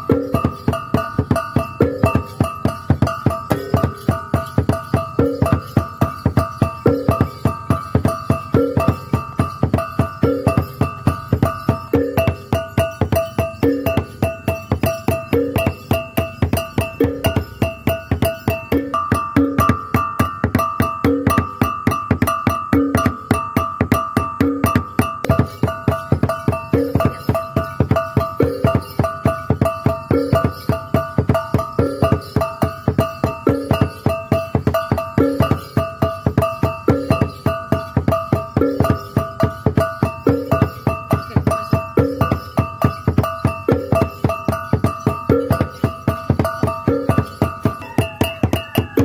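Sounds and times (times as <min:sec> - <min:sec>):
percussion music: 0:00.0 - 0:49.0
ringing pitched tones: 0:00.0 - 0:49.0.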